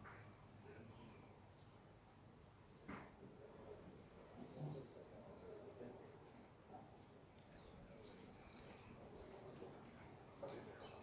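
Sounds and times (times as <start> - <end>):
bird chirps: 7.4 - 11.0.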